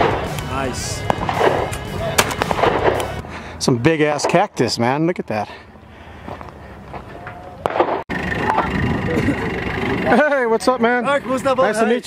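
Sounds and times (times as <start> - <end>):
other gunfire: 1.0 - 3.2, 7.6 - 8.0
shotgun firing: 1.0 - 3.2, 7.6 - 8.6.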